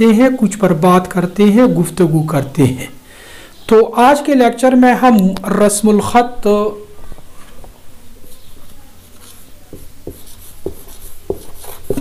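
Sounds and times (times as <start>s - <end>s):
marker squeaking on whiteboard: 8.3s - 12.0s.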